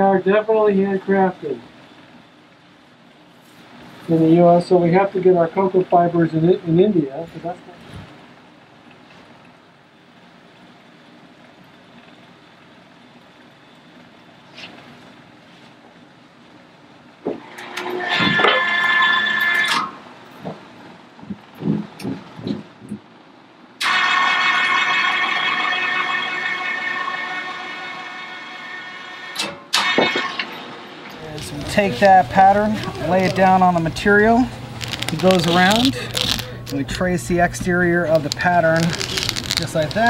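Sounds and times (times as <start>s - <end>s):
electric chain hoist motor whining: 17.4s - 20.1s, 23.8s - 40.0s.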